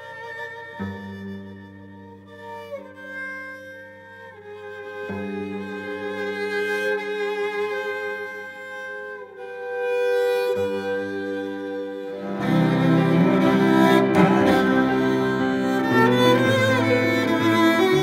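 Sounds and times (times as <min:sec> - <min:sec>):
bowed cello: 0:00.0 - 0:18.0.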